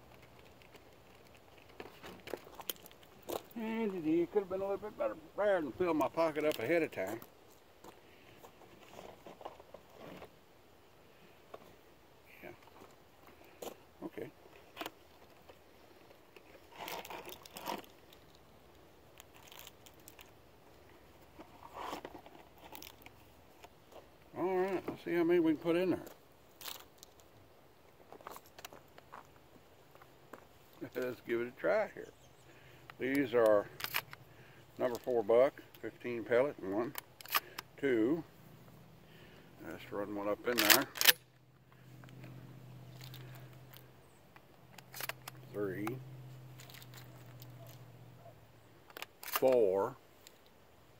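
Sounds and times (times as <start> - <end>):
rustling and crinkling handling noise: 0.0 - 10.5, 11.2 - 50.9
gun handling clicks: 32.9 - 34.2, 36.9 - 37.7, 40.5 - 41.4, 43.0 - 46.0, 48.9 - 50.5
shotgun slide racking: 40.5 - 41.2
shell pushed into magazine clicks: 40.6 - 41.3.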